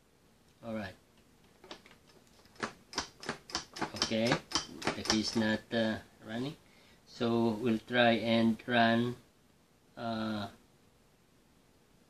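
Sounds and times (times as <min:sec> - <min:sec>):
lock bolt clicking: 0:01.6 - 0:05.5.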